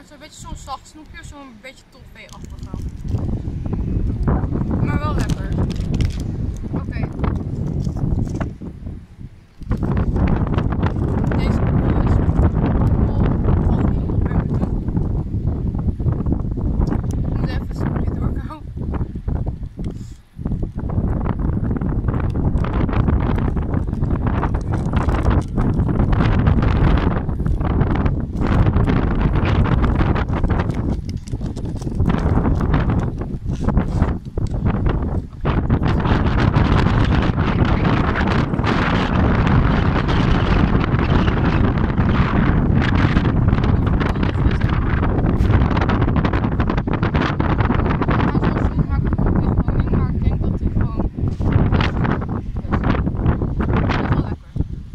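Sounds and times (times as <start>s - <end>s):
strong wind buffeting microphone: 0.0s - 54.9s.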